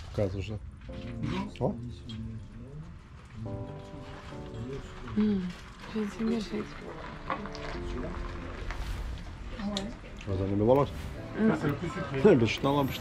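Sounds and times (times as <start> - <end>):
background music with held notes: 0.8 - 13.0.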